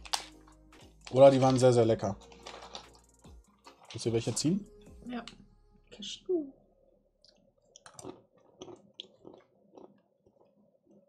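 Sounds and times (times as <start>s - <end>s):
chewing nuts: 2.2s - 3.1s, 7.3s - 11.0s.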